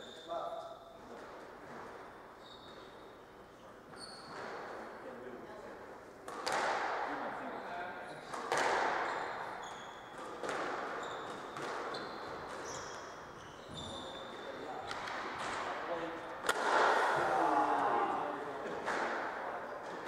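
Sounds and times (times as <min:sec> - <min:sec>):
shoes squeaking on wooden floor: 0:02.4 - 0:03.0, 0:03.9 - 0:04.8, 0:09.0 - 0:15.2
squash ball hitting rackets and walls: 0:04.2 - 0:05.0, 0:06.2 - 0:07.4, 0:08.2 - 0:17.4, 0:18.6 - 0:20.0.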